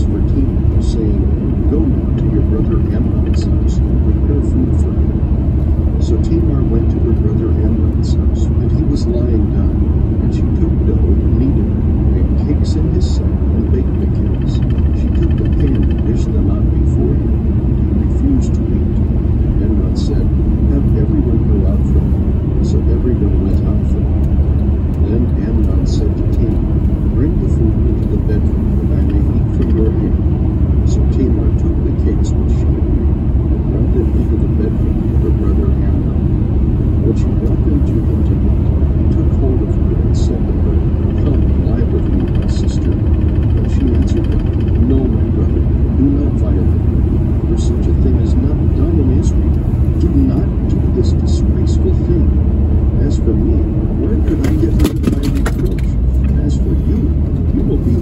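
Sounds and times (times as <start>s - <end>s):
road and engine rumble: 0.0s - 58.0s.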